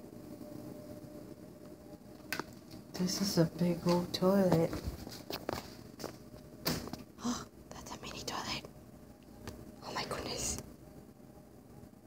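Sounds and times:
person whispering: 0:07.2 - 0:08.7, 0:09.8 - 0:10.6.

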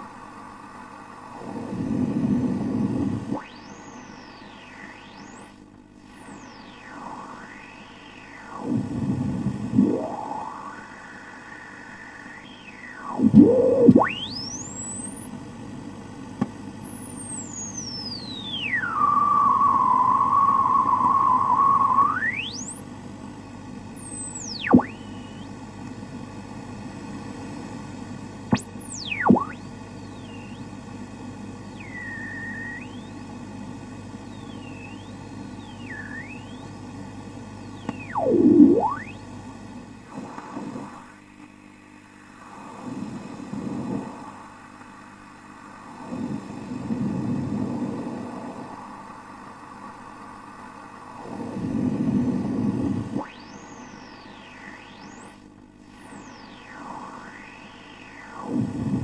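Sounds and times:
radio static and hum: 0:00.0 - 0:59.0
gliding whistling interference tones: 0:01.4 - 0:15.4, 0:16.6 - 0:22.9, 0:23.9 - 0:25.5, 0:28.5 - 0:30.7, 0:31.6 - 0:33.3, 0:34.2 - 0:36.9, 0:37.6 - 0:39.2, 0:52.6 - 0:59.0.

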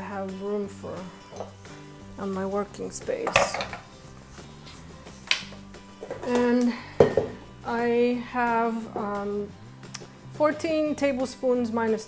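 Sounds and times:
faint background music: 0:00.0 - 0:12.0
kitchen item clinking on worktop: 0:03.2 - 0:03.9, 0:06.0 - 0:07.4.

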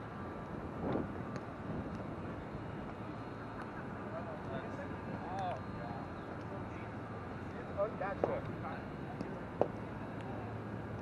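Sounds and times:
wind on microphone: 0:00.5 - 0:03.1.

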